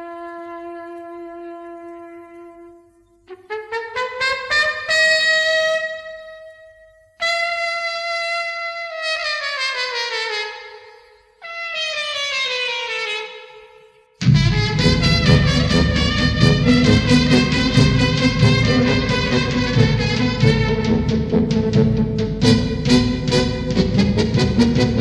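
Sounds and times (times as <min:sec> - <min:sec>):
solo trumpet: 0:00.0 - 0:25.0.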